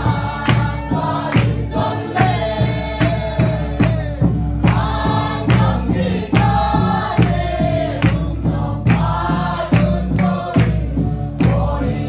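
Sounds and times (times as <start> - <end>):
group singing in unison: 0.0 - 12.0
hand claps: 0.4 - 11.8.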